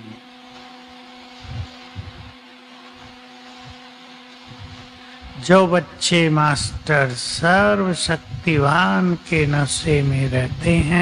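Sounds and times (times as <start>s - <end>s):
sound system hum and hiss: 0.0s - 11.0s
soft low thumps: 1.4s - 2.3s, 4.5s - 4.9s.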